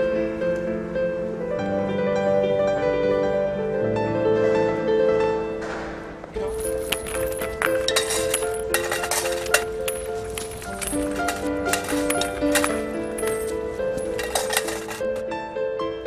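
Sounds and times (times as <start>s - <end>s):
slow instrumental music: 0.0s - 16.0s
coins clinking into tin can: 6.4s - 15.2s.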